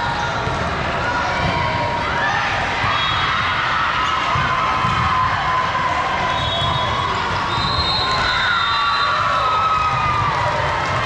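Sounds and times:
crowd cheering and shouting: 0.0s - 11.0s
volleyball strikes: 4.2s - 5.4s.

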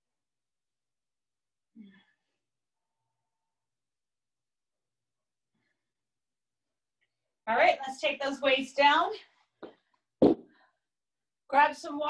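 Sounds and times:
hand weights thudding on floor: 9.6s - 10.5s.

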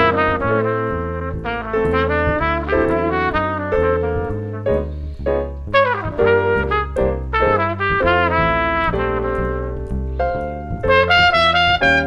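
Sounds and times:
jazz trumpet solo: 0.0s - 5.0s, 5.7s - 12.0s
walking bass line: 0.0s - 12.0s.

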